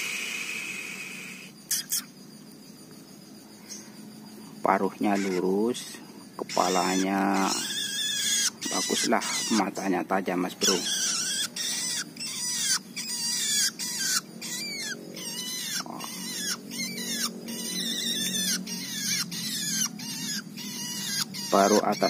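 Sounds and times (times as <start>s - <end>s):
bird harsh rasping calls: 0.0s - 2.2s, 3.5s - 22.0s.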